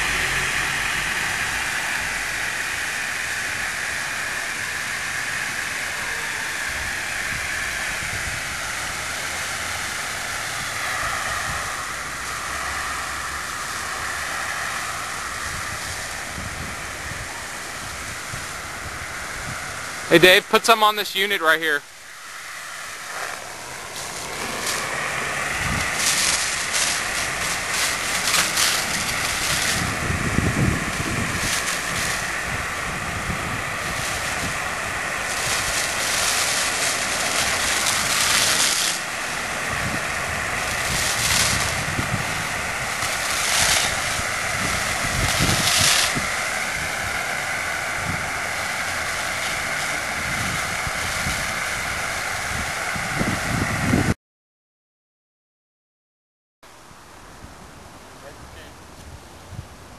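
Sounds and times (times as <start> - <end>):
wind buffeting microphone: 0.0 - 21.0, 22.0 - 54.2, 57.3 - 59.9
foam hose rushing hiss: 0.0 - 54.2.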